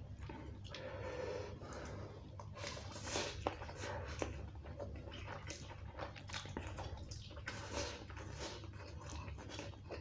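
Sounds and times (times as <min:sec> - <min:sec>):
chewing: 0:00.0 - 0:10.0.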